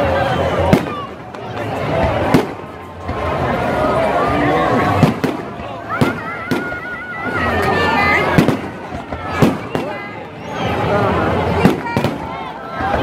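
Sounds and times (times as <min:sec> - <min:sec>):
crowd voices: 0:00.0 - 0:13.0.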